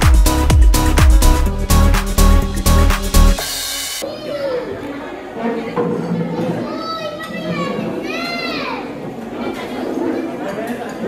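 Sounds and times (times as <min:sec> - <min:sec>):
young child talking and calling out: 0:04.0 - 0:04.9, 0:06.5 - 0:09.0
people chattering: 0:04.0 - 0:11.0.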